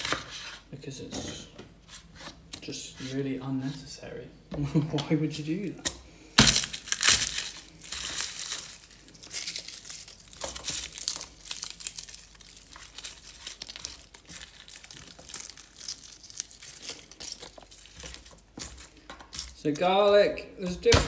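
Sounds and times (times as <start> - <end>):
papery garlic skins crinkling: 5.1 - 21.0
garlic crushed on cutting board: 5.8 - 20.3.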